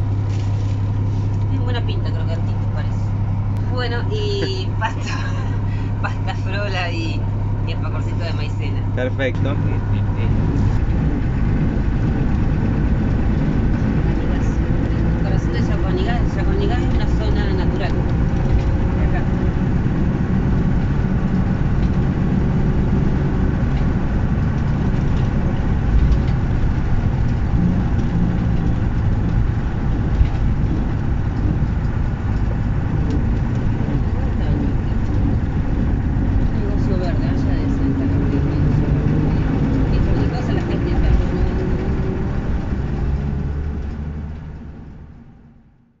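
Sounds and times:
tyre and road noise: 0:00.0 - 0:45.9
diesel truck engine running: 0:00.0 - 0:46.0.

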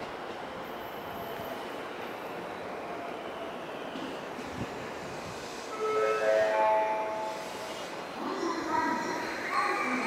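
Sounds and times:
station hubbub: 0:00.0 - 0:10.0.

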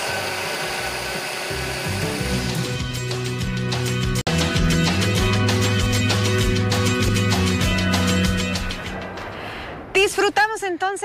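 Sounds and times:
blender motor whirring: 0:00.0 - 0:03.0
music: 0:01.5 - 0:11.0.

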